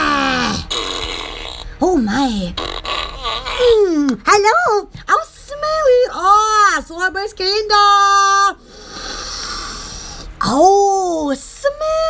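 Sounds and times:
deep breathy sniff: 8.6s - 10.4s.

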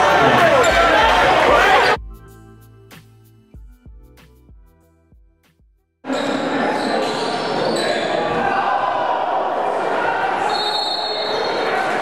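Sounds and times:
crowd voices echoing: 0.0s - 2.0s, 6.1s - 12.0s
music: 0.0s - 6.1s.

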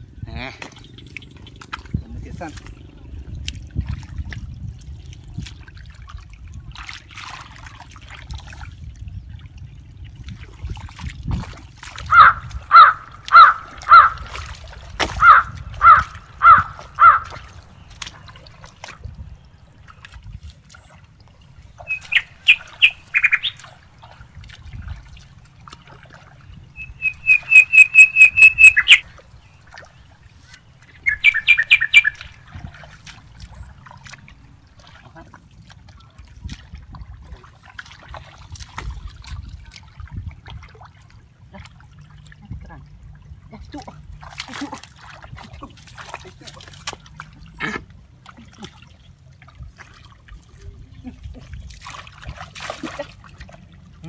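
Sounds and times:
wind rumble on microphone: 0.0s - 48.2s, 49.1s - 54.0s
bird trill: 12.1s - 14.2s, 15.2s - 18.0s, 21.6s - 23.8s, 26.6s - 29.7s, 30.3s - 32.4s
bird calling: 12.1s - 20.1s, 21.3s - 24.2s, 26.4s - 34.0s.

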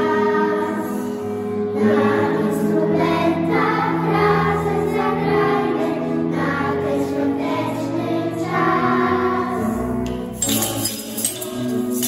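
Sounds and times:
children's choir singing: 0.0s - 12.0s
instrumental accompaniment: 0.0s - 12.0s.

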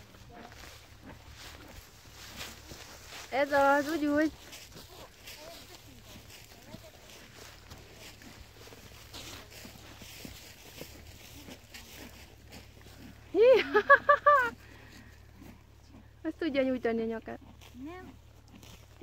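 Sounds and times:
person laughing loudly: 13.4s - 14.6s.

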